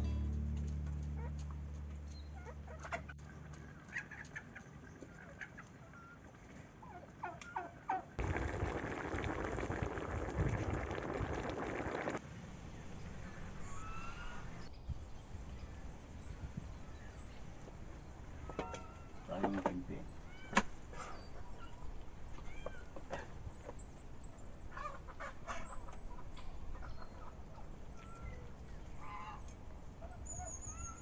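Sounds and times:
liquid boiling hard in a wok: 8.2 - 12.2
faint bird chirps: 13.0 - 31.0
chickens clucking: 24.7 - 27.7.

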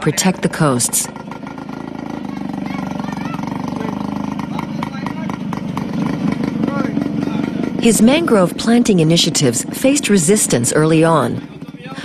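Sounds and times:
small vehicle engine running: 0.0 - 12.0.

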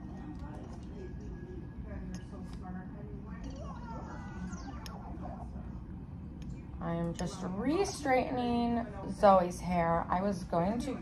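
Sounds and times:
faint squeaky voices from laptop: 0.0 - 11.0
low room hum: 0.0 - 11.0.

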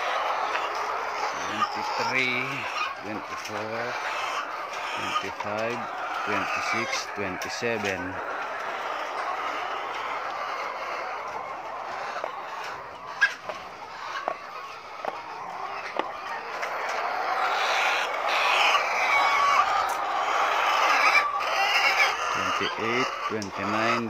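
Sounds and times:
hens clucking: 0.0 - 24.0.

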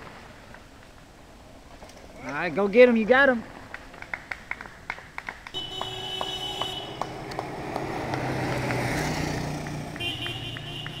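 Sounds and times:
bikes rushing past on pavement: 3.3 - 11.0.

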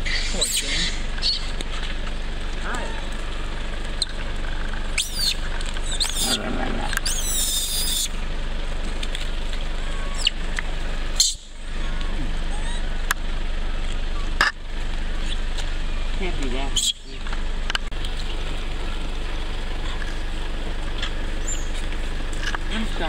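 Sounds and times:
monkeys squealing: 0.0 - 1.6, 2.6 - 8.2, 9.7 - 10.5, 11.2 - 13.1, 15.1 - 15.6, 16.6 - 17.2, 19.6 - 20.2
outdoor background noise: 0.0 - 23.0.

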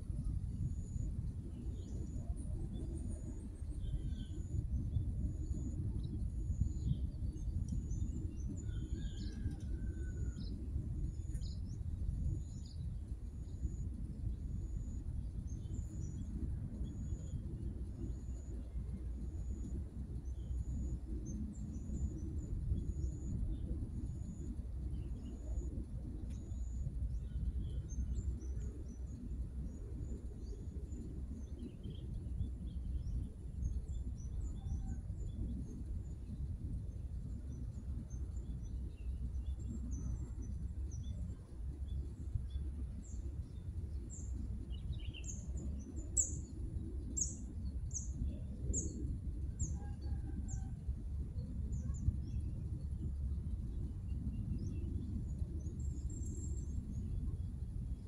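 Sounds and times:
steady low rumble: 0.0 - 58.0.

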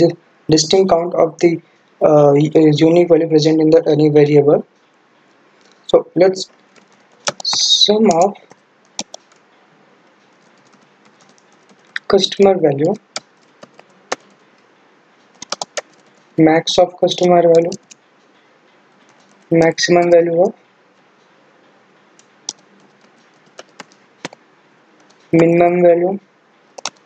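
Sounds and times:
computer keyboard typing: 5.6 - 9.4, 10.0 - 14.6, 15.3 - 18.0, 19.0 - 20.6, 22.1 - 24.4, 25.0 - 25.6, 26.8 - 27.0.

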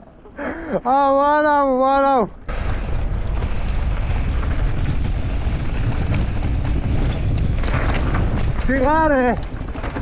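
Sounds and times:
wind buffeting microphone: 2.3 - 10.0
bike rattle on dirt trail: 2.4 - 10.0.

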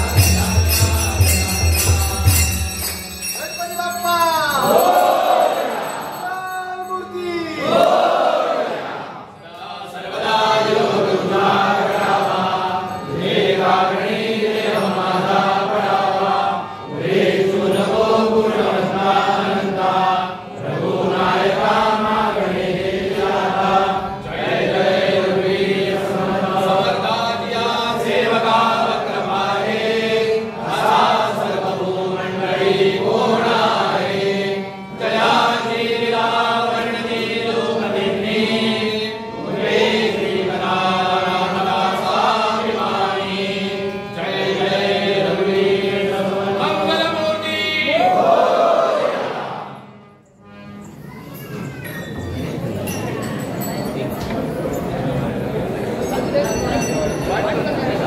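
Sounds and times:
group chanting in unison: 4.6 - 6.1, 7.6 - 46.9, 47.8 - 49.9.

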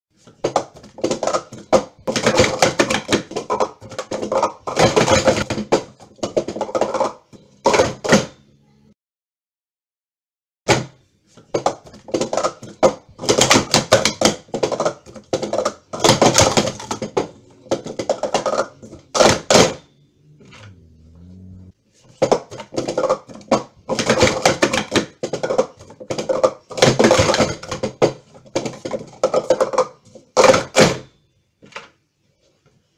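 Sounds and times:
plastic cups clattering: 0.2 - 8.3, 11.4 - 19.8, 22.1 - 32.0.

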